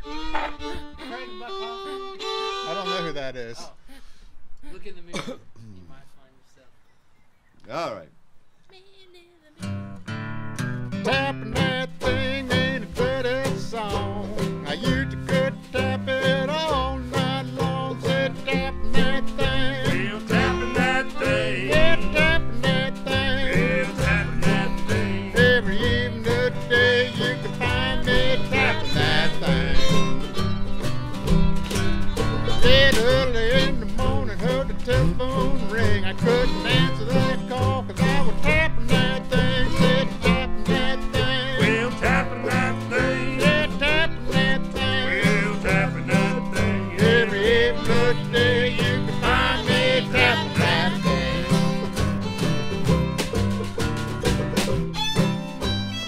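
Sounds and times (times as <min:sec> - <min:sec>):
banjo: 0:00.0 - 0:03.0, 0:10.6 - 0:56.0
bowed fiddle melody: 0:00.0 - 0:03.8, 0:10.0 - 0:56.0
acoustic guitar: 0:00.0 - 0:05.4, 0:08.7 - 0:56.0
steady bass line: 0:10.6 - 0:56.0.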